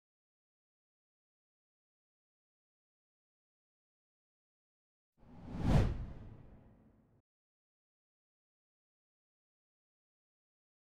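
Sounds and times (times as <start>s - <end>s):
deep whoosh: 5.3s - 6.6s.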